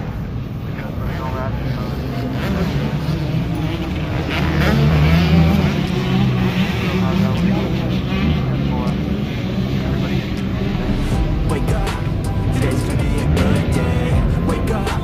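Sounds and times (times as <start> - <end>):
dirt bike engines running: 0.0 - 15.0
people talking: 0.0 - 15.0.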